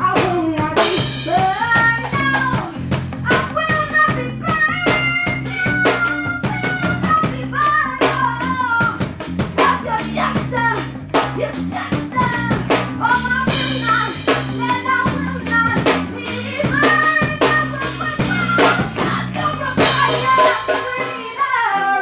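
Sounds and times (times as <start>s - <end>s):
drum kit: 0.0s - 22.0s
woman singing: 0.0s - 22.0s.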